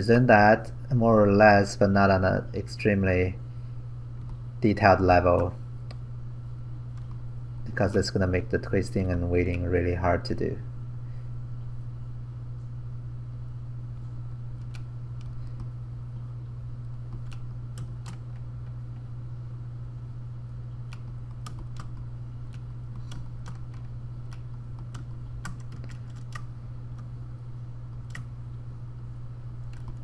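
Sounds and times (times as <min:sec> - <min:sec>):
low hum: 0:00.0 - 0:30.0
mouse and keyboard clicking: 0:17.1 - 0:18.4, 0:20.9 - 0:26.5, 0:29.7 - 0:30.0.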